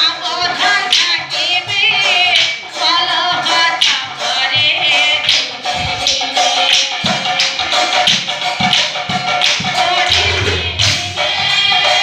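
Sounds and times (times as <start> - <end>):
drum strokes: 8.0 - 12.0
cymbals: 9.6 - 12.0
held sung or played note: 9.8 - 12.0.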